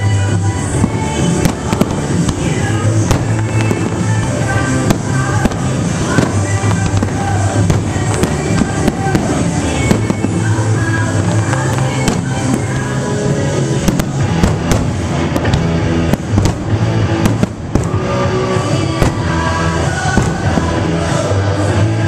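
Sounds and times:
fireworks bursting and crackling: 0:00.0 - 0:22.0
loud music with bass: 0:00.0 - 0:22.0.

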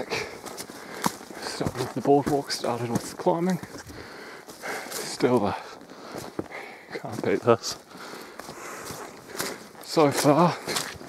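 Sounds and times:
footsteps on dirt track: 0:00.0 - 0:11.0.

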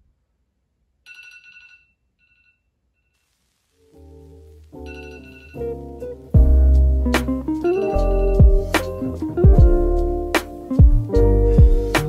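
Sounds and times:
phone alarm ringtone: 0:04.9 - 0:05.8, 0:07.7 - 0:08.4.

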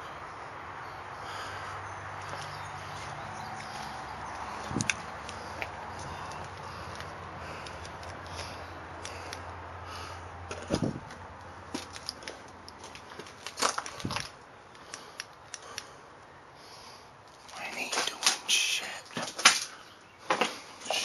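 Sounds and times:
footsteps on debris-strewn floor: 0:10.5 - 0:14.4.

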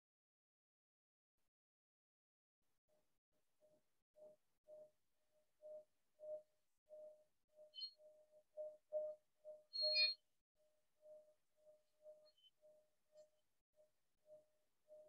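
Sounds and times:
singing bowl tone: 0:05.6 - 0:15.0.

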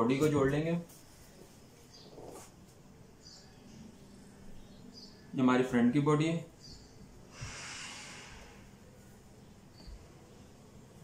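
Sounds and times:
person breathing out: 0:07.3 - 0:08.8.

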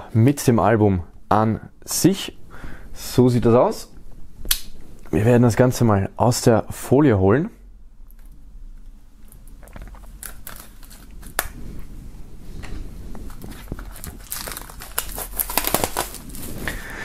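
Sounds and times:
plastic film crinkling: 0:09.6 - 0:11.6, 0:13.1 - 0:16.9
knife slitting plastic film: 0:10.1 - 0:11.6, 0:13.3 - 0:16.6.

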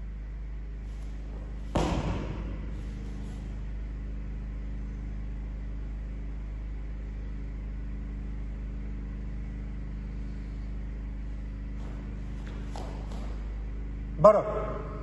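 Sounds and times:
steady low rumbling hum: 0:00.0 - 0:15.0.

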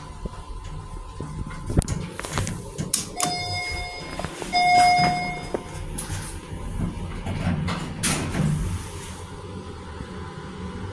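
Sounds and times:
elevator chime: 0:03.1 - 0:06.1.

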